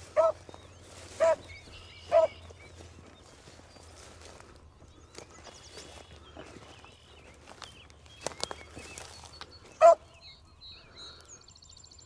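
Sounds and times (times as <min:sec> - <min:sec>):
birds chirping faintly: 0:00.0 - 0:12.0
dog barking: 0:00.1 - 0:00.4, 0:01.2 - 0:01.5, 0:02.1 - 0:02.4, 0:09.8 - 0:10.0.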